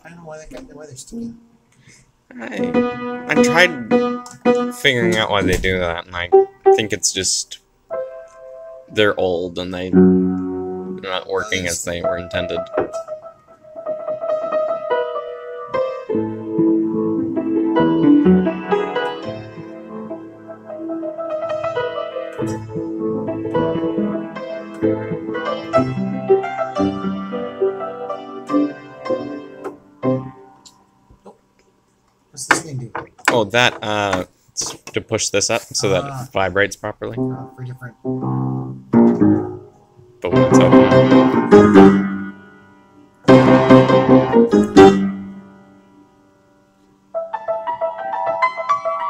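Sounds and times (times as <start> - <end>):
out-of-tune upright piano: 2.6 - 31.3, 37.0 - 49.0.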